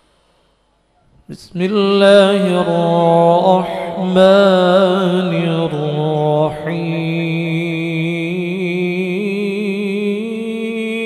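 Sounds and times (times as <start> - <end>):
man reciting melodically: 1.3 - 11.0.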